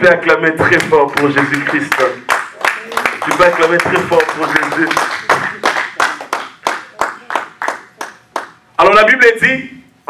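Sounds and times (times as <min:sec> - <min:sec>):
congregation clapping rhythmically: 0:00.6 - 0:08.7.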